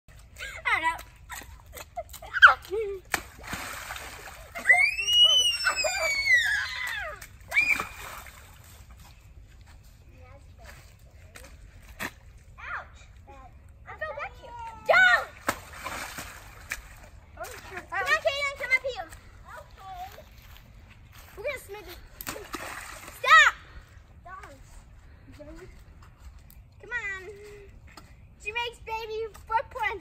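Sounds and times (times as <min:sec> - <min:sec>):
splashing through a muddy puddle: 0:00.1 - 0:09.3, 0:10.4 - 0:13.2, 0:14.6 - 0:20.5, 0:21.2 - 0:24.0
children squealing and calling out: 0:04.5 - 0:08.3.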